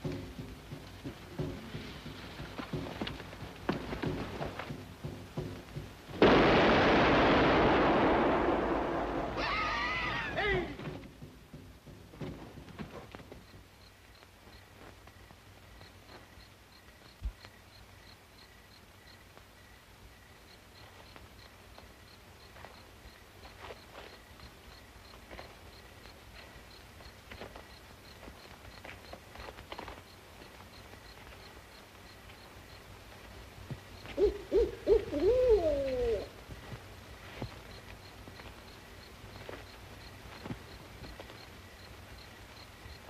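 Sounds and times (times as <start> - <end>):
faint night background: 0.0 - 43.0
owl hooting: 9.4 - 10.7, 34.0 - 36.4.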